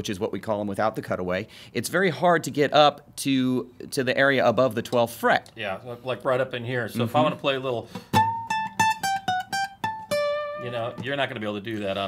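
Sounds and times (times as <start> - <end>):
acoustic guitar plucked notes: 8.0 - 11.6.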